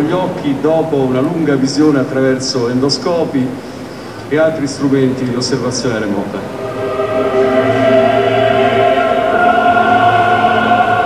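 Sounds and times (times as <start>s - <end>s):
choir holding sustained notes: 6.2s - 11.0s.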